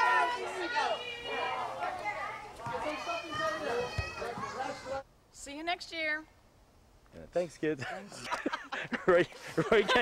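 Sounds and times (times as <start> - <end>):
children shouting and talking: 0.0 - 5.1.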